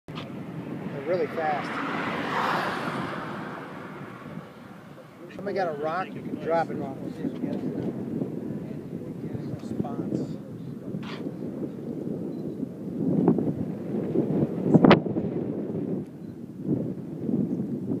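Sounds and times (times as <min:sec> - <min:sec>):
wind buffeting microphone: 0:00.1 - 0:18.0.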